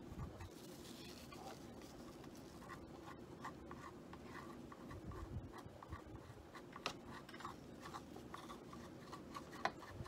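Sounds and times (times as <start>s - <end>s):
paintbrush brushing on canvas: 0.1s - 10.0s.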